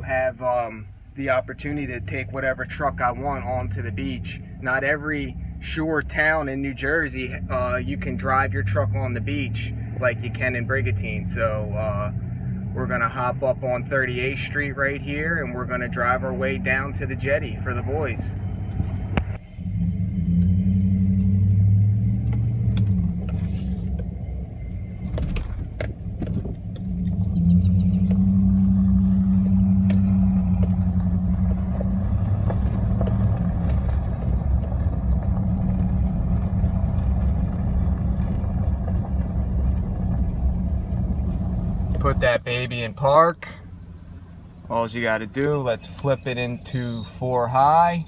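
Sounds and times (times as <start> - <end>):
truck engine low drone: 0.0 - 48.0.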